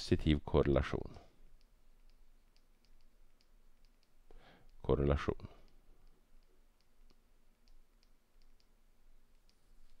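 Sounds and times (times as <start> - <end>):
stylus tapping on tablet screen: 1.1 - 4.9, 5.6 - 10.0.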